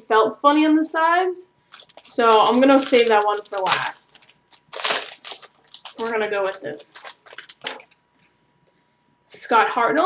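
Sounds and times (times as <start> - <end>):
wrapper crinkling: 1.7 - 8.0.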